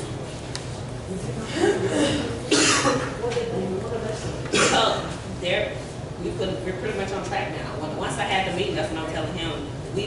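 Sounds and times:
speech: 1.1s - 10.0s
person coughing: 1.6s - 3.2s, 4.5s - 5.0s.

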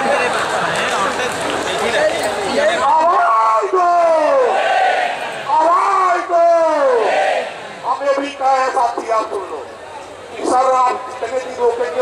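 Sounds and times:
man shouting into a microphone: 2.8s - 4.6s, 5.5s - 9.5s.

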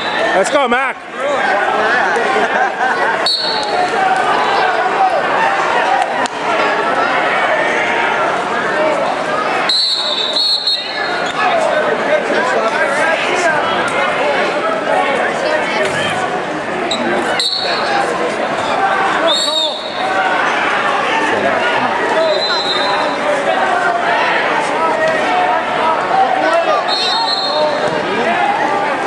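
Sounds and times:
crowd chatter in gymnasium: 0.0s - 29.0s
spectators talking and shouting: 0.0s - 29.0s
referee's whistle blast: 3.2s - 3.8s, 9.7s - 11.2s, 22.2s - 23.2s, 26.8s - 27.8s.

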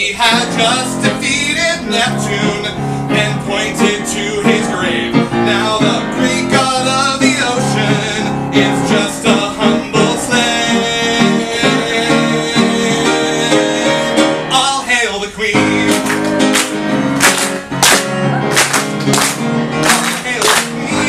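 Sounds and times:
man singing: 0.0s - 16.9s, 19.9s - 21.0s
grand piano chords: 0.0s - 21.0s.

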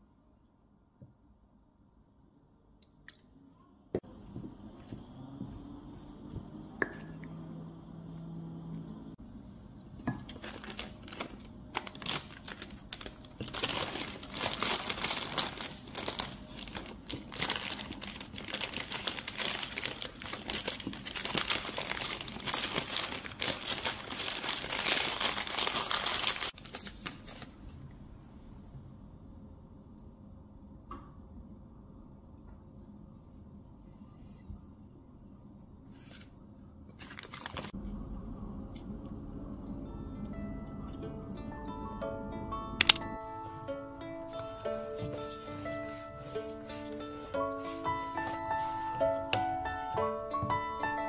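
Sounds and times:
wooden spoon mixing in bowl: 4.0s - 7.5s
paper crinkling: 10.2s - 27.8s, 37.0s - 37.8s.

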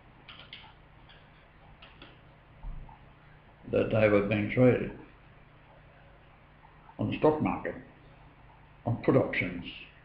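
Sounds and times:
soft irregular clicks: 0.2s - 2.2s.

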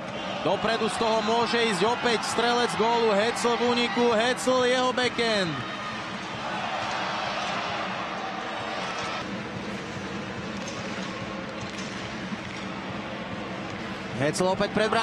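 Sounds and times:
arena crowd din: 0.0s - 15.0s.

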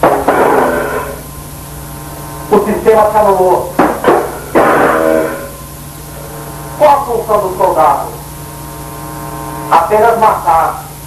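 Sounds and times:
sharp hit: 0.0s - 1.3s, 3.8s - 5.8s
loud distorted chord: 0.0s - 10.8s
mains hum: 0.0s - 11.0s.

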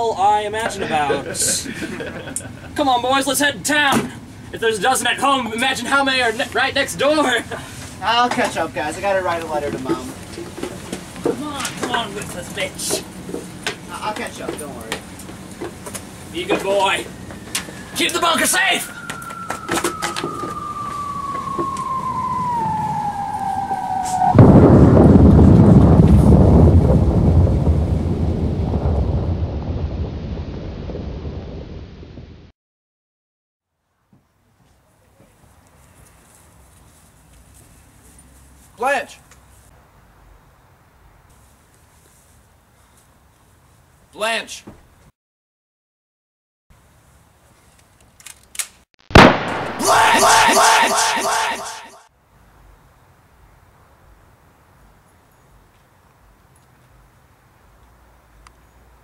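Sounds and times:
falling bomb whistle: 17.2s - 25.4s, 49.1s - 52.1s
loud explosion: 19.6s - 32.0s, 49.1s - 52.0s
loud gunshot-like bang: 49.1s - 52.0s
person yelling: 49.8s - 52.0s.

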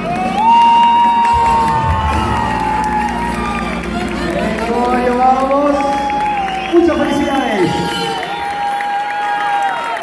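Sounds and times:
crowd cheering: 0.0s - 10.0s.

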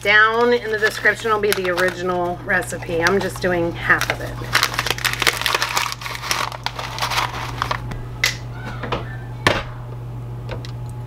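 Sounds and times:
paper pouch crinkling: 0.0s - 7.9s
steady low hum: 0.0s - 11.0s.

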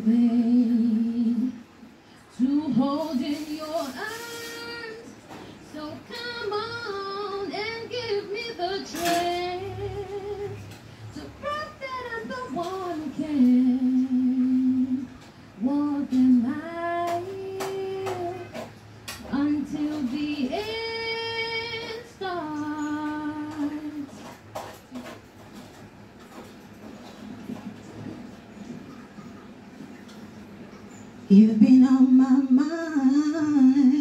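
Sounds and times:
woman singing a cappella: 0.0s - 24.4s, 31.3s - 34.0s.

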